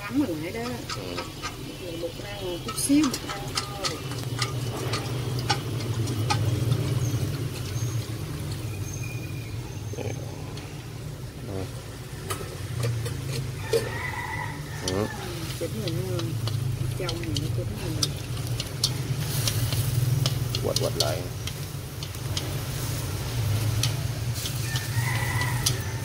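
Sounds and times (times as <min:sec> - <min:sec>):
chopsticks clicking against metal bowl: 0:00.1 - 0:07.9, 0:14.7 - 0:26.0.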